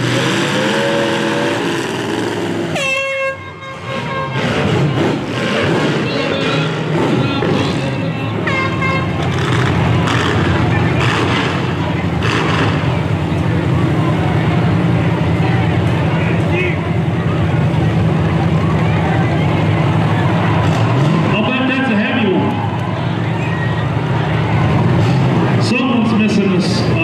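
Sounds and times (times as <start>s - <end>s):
engine revving: 0.0s - 3.0s, 3.9s - 8.4s, 9.1s - 14.6s, 19.6s - 21.8s
car engines droning: 0.0s - 27.0s.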